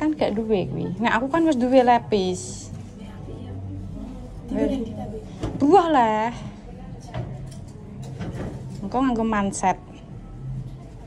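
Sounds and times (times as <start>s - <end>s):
woman speaking: 0.0s - 3.7s.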